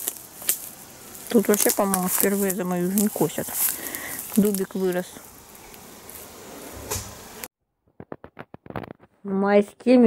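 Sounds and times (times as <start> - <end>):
faint outdoor hiss: 0.0 - 7.5.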